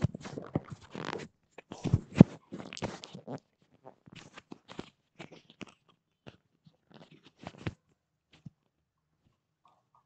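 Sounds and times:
faint clicks and crunching: 0:00.0 - 0:10.0.

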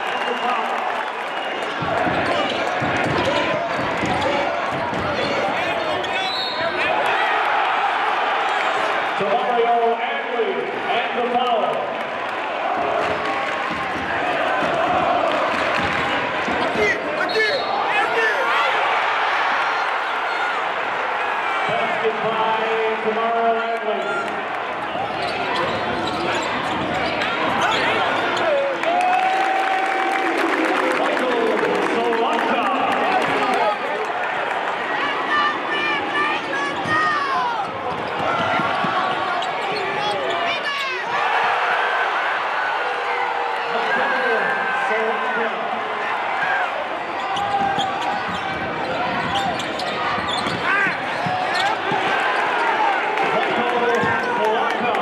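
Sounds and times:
arena crowd noise: 0:00.0 - 0:55.0.

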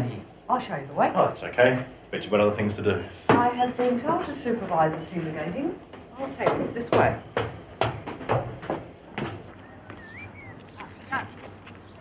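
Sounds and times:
heavy footsteps climbing stairs: 0:03.3 - 0:10.7.

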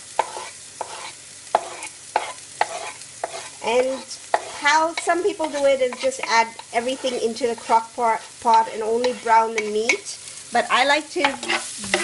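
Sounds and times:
faint sizzle of onions in oil: 0:00.0 - 0:12.0
spatula scraping wooden board: 0:00.2 - 0:04.7, 0:05.4 - 0:08.4, 0:11.3 - 0:11.7
spatula knocking board and pan: 0:00.2 - 0:10.0.

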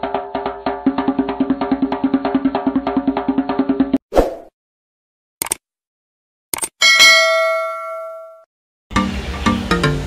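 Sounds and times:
notification bell ding: 0:06.8 - 0:08.5.

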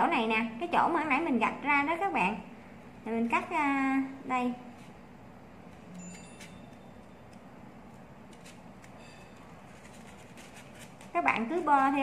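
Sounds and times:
scissors snipping paper: 0:06.1 - 0:12.0.

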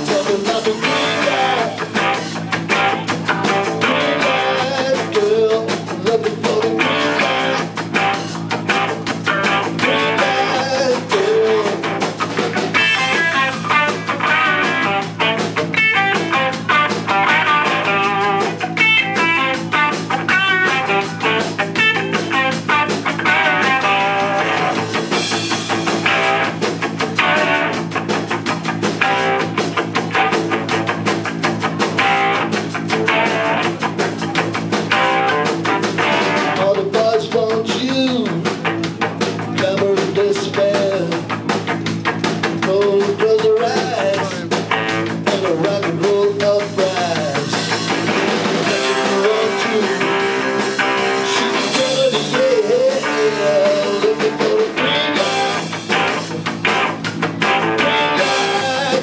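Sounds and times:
drum kit: 0:00.0 - 0:59.0
electric bass: 0:00.0 - 0:59.0
electric guitar playing lead: 0:00.0 - 0:59.0.

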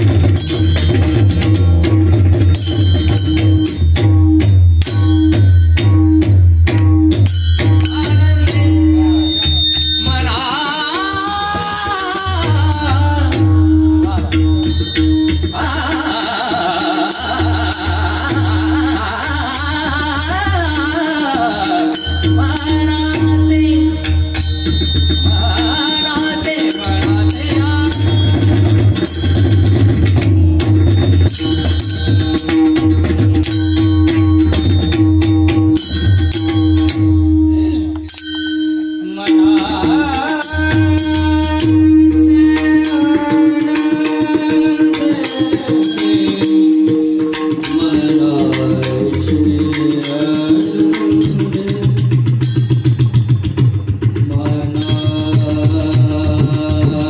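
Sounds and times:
barrel drum played by hand: 0:00.0 - 0:38.1, 0:39.3 - 0:57.0
small hand cymbals ringing: 0:00.0 - 0:57.0.

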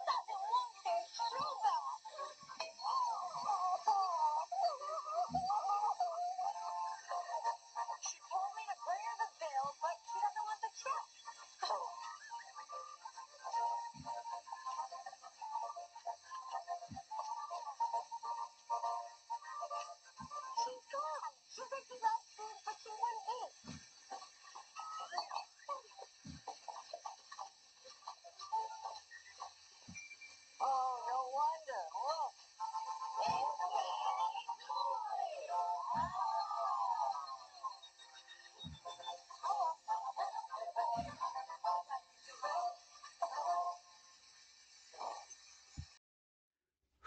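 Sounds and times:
children talking on television: 0:00.0 - 0:30.0, 0:30.6 - 0:45.3
tv show music: 0:00.0 - 0:45.3.

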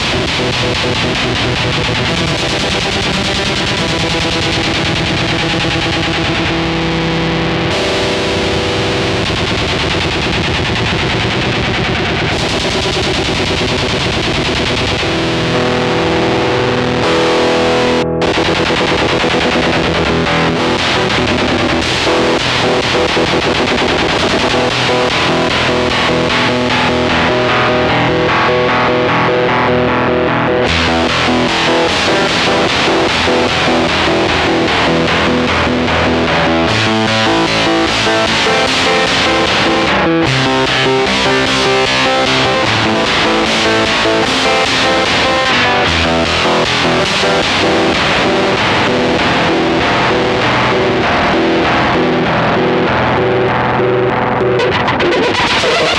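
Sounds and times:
fuzzed electric guitar: 0:00.0 - 0:55.9.

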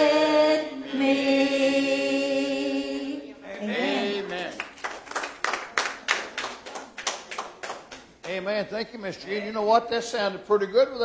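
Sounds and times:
congregation clapping in rhythm: 0:04.2 - 0:08.5.

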